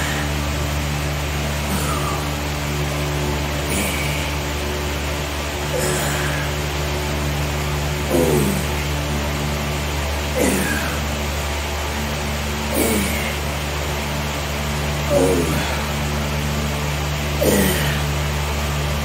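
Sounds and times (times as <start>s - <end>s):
man grunting with effort: 0.0s - 9.6s, 10.2s - 13.8s, 14.9s - 16.5s, 17.1s - 19.0s
steady low hum: 0.0s - 19.0s.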